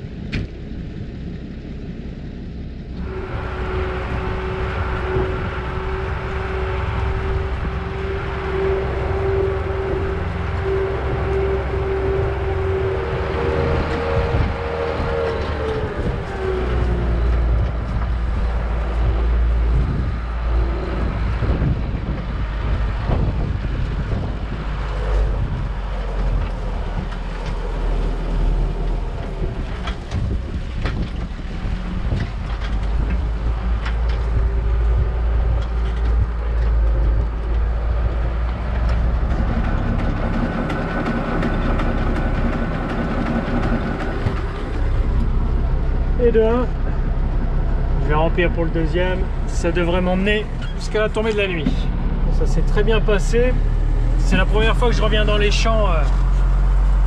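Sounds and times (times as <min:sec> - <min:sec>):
tractor engine rumble: 0:00.0 - 0:57.0.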